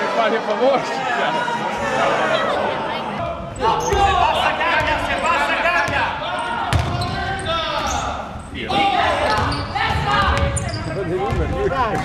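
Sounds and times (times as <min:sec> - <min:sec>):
voices calling out in hall: 0:00.0 - 0:12.0
basketball bouncing on wooden court: 0:06.7 - 0:07.2, 0:09.3 - 0:10.7, 0:11.3 - 0:12.0.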